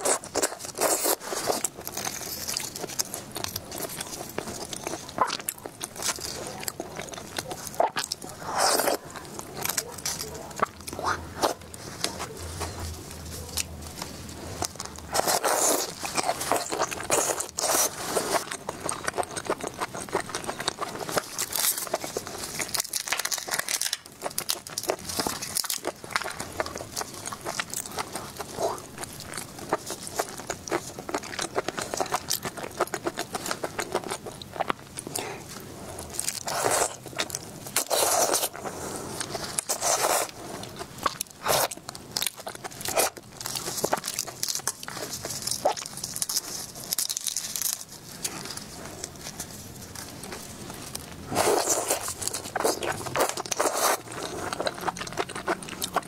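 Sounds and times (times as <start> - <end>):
chewing prawn shell crunches: 0.0 - 56.0
chewing with wet mouth clicks: 36.1 - 56.0.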